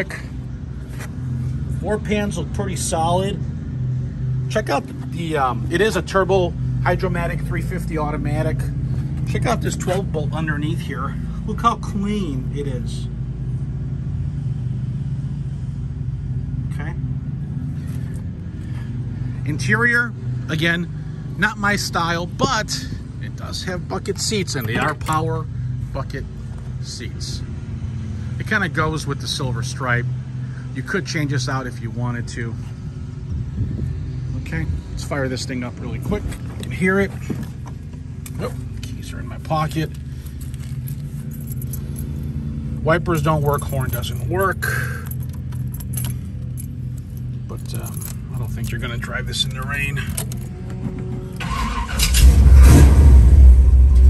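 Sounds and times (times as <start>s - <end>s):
engine idling: 0.0s - 54.0s
keys jingling: 39.7s - 42.4s, 43.1s - 51.9s.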